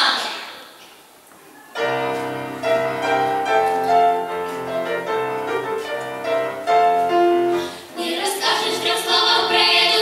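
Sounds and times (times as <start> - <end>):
piano: 1.7 - 10.0
children's choir singing: 7.8 - 10.0.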